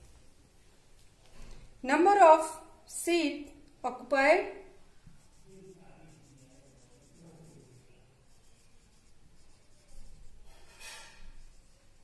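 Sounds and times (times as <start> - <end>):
marker writing on whiteboard: 4.9 - 12.0.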